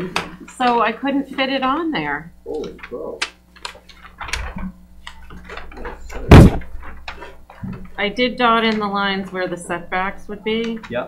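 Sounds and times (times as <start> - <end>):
paper rustling: 2.6 - 8.0
loud thump: 5.9 - 7.0.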